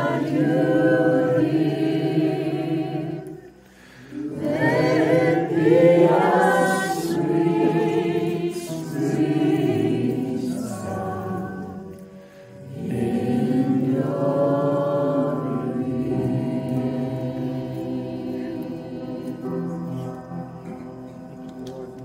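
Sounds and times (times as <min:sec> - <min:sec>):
women singing together: 0:00.0 - 0:12.0, 0:12.6 - 0:19.8.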